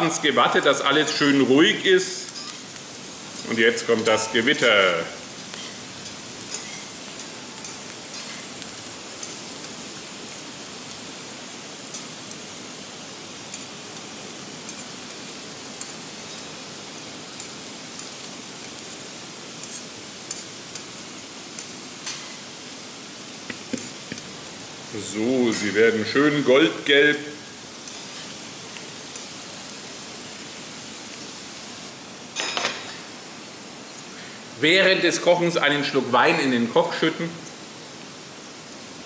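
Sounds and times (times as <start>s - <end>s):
potato slices sizzling in oil: 0.0s - 39.0s.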